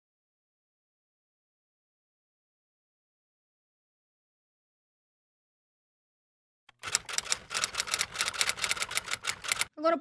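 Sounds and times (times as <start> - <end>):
rapid sharp clicks: 6.7 - 9.7.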